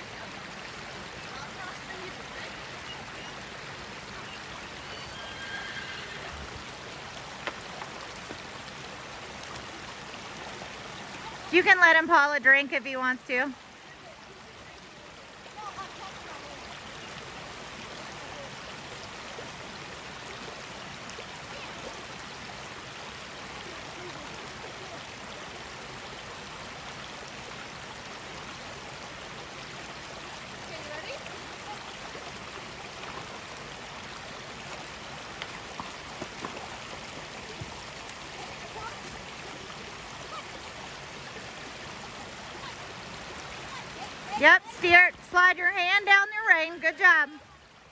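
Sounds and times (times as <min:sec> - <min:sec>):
creek running over rocks: 0:00.0 - 0:47.9.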